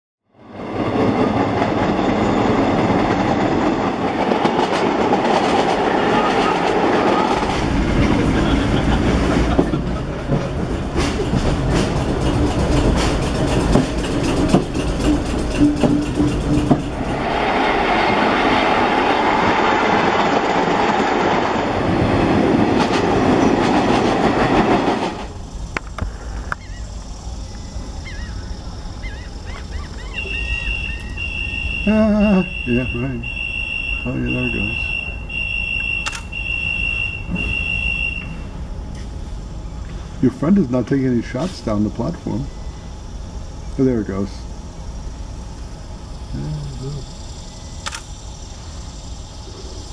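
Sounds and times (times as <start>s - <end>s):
subway train passing: 0.3s - 49.9s
wheels clattering over rail joints: 0.6s - 26.6s.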